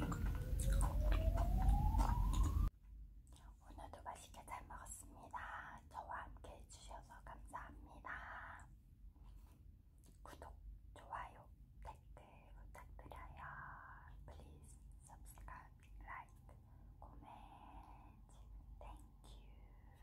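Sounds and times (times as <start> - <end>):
woman whispering: 0.5 - 1.4, 3.3 - 8.7, 10.1 - 20.0.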